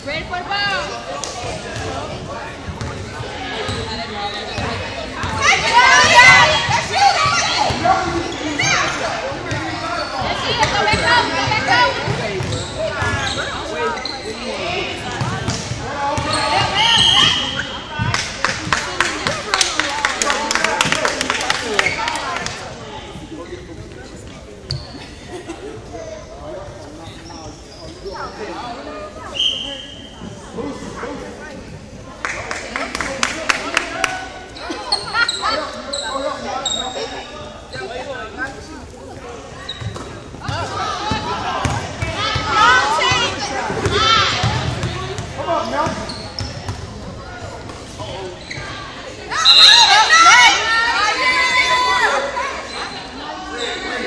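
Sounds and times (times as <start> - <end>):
people shouting in echoing gym: 3.4 - 15.2, 15.8 - 18.0, 40.5 - 45.8, 48.8 - 53.0
sneaker squeaks on hardwood: 12.1 - 14.5, 15.2 - 18.0, 24.6 - 25.2, 34.6 - 37.9, 39.6 - 41.8, 44.5 - 46.9, 48.4 - 49.9.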